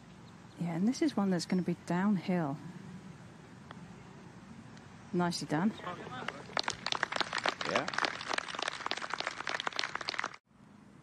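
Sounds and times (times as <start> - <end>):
spectators applauding: 6.1 - 10.4.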